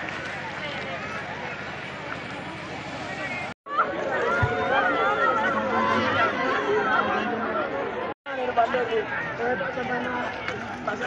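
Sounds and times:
crowd talking and calling: 0:00.0 - 0:11.0.

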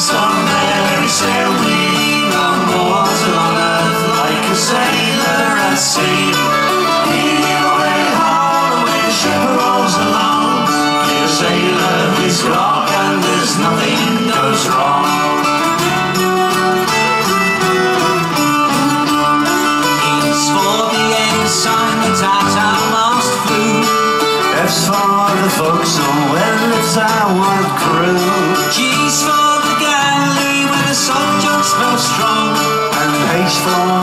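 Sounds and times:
folk-rock band playing: 0:00.0 - 0:34.0
mandolin: 0:00.0 - 0:34.0
strummed acoustic guitar: 0:00.0 - 0:34.0.

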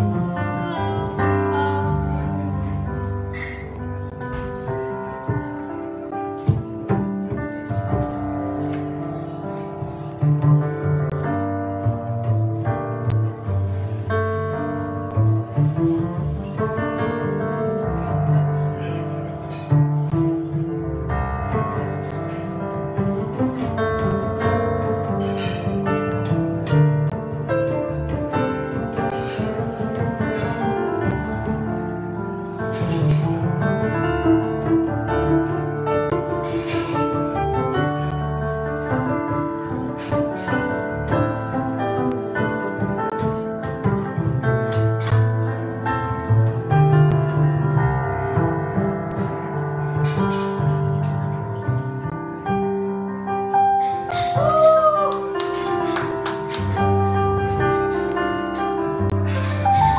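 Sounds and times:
plucked double bass: 0:00.0 - 0:53.0, 0:56.1 - 0:59.9
piano chords: 0:00.0 - 0:59.9.

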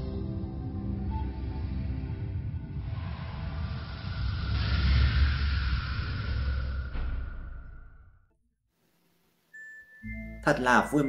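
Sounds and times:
low rumbling whoosh: 0:01.2 - 0:08.4.

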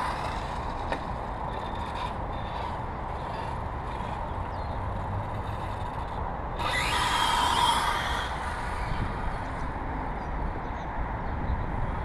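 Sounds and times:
toy car electric motor: 0:00.0 - 0:09.7
hissing burst of motor and tyres: 0:06.6 - 0:09.6.

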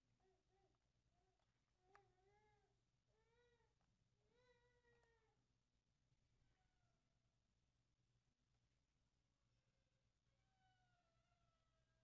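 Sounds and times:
faint high-pitched cries: 0:00.2 - 0:05.5, 0:10.5 - 0:12.0.

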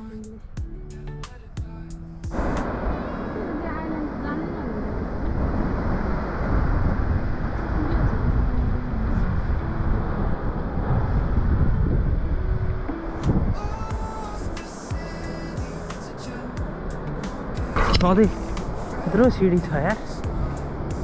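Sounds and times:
background music: 0:00.0 - 0:04.2, 0:07.2 - 0:21.0
wind buffeting microphone: 0:02.3 - 0:21.0.

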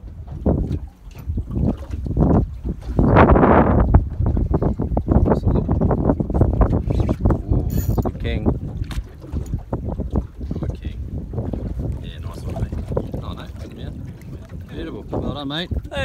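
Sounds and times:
water sloshing against boat: 0:00.0 - 0:16.0
wind buffeting microphone: 0:00.0 - 0:16.0.

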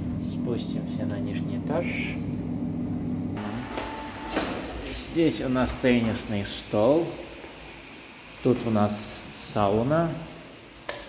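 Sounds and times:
lift humming: 0:00.0 - 0:10.8.

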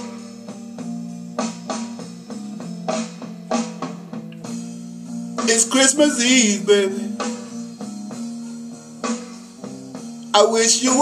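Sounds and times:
blues backing track: 0:00.0 - 0:11.0.

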